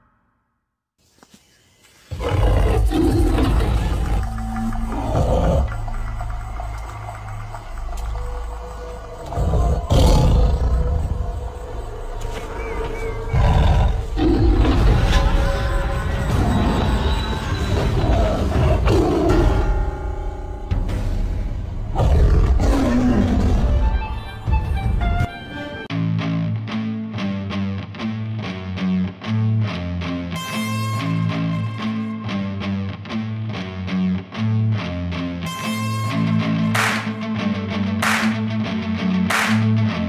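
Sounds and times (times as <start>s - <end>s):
big cat roaring: 2.1s - 5.9s, 9.2s - 11.3s, 13.0s - 15.3s, 17.6s - 19.6s, 21.9s - 23.8s
music with low drone: 2.1s - 40.0s.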